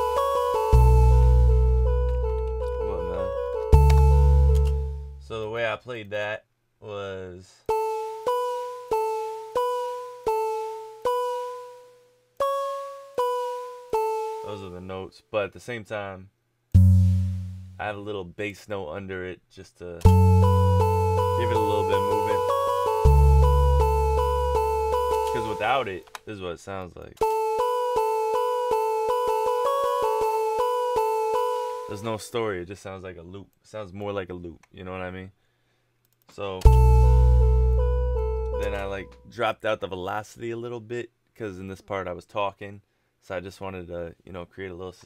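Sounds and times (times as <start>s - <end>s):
fuzzy piano-like synth melody: 0.0s - 5.3s, 7.7s - 14.7s, 16.8s - 17.8s, 20.1s - 26.0s, 27.2s - 32.2s, 36.7s - 39.3s.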